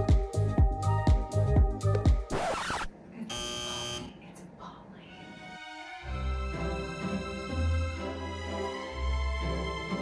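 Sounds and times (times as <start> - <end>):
electronic wrong answer buzzer: 2.4 - 4.1.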